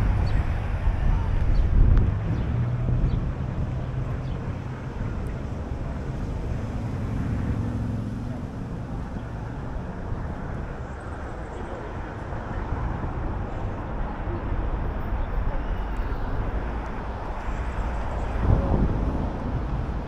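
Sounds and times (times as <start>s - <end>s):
city road traffic rumble: 0.0s - 20.0s.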